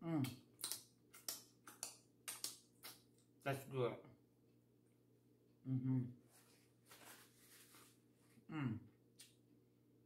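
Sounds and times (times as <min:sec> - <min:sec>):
person humming mm-hmm: 0:05.6 - 0:06.2, 0:08.5 - 0:08.9.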